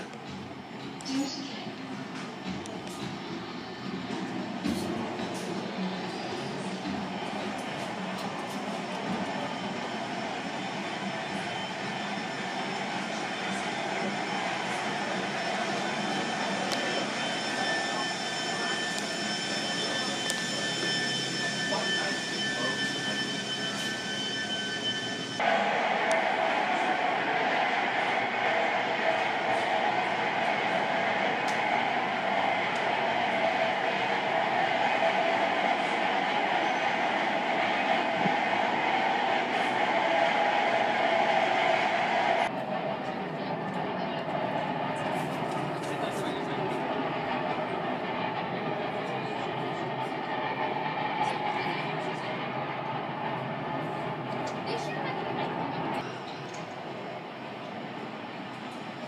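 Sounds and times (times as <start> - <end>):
ship machinery drone: 0.0 - 56.0
faint steady tones: 5.5 - 26.3.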